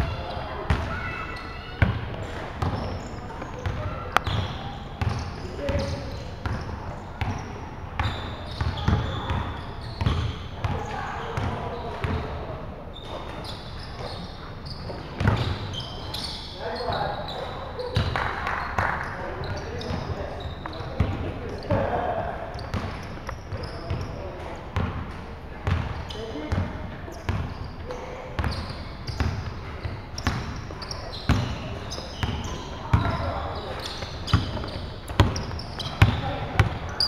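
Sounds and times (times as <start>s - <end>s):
basketball bouncing on wooden court: 1.8s - 2.9s, 3.6s - 6.6s, 8.0s - 12.3s, 15.2s - 15.6s, 18.0s - 18.9s, 22.6s - 24.1s, 25.6s - 26.7s, 27.3s - 27.6s, 28.4s - 37.0s.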